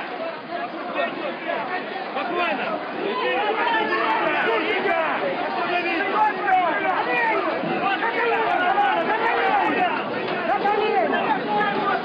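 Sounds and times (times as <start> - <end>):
crowd talking and shouting: 0.0 - 12.0.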